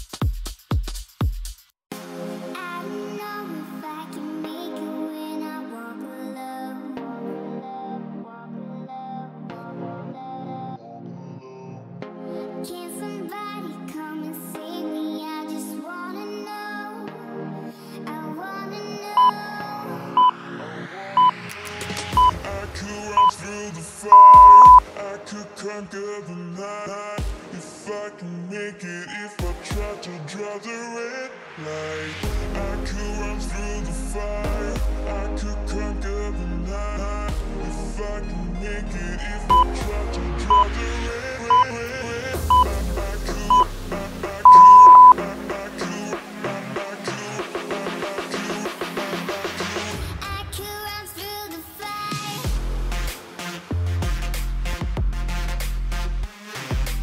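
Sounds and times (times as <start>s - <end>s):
background music: 1.9s - 57.0s
short electronic beeps: 24.1s - 24.8s, 39.5s - 39.7s, 44.5s - 45.2s
electronic music: 24.2s - 24.8s, 44.5s - 45.2s.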